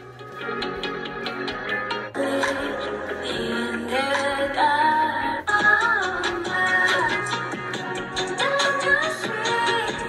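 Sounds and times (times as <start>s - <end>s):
electronic music with singing: 0.0s - 10.0s.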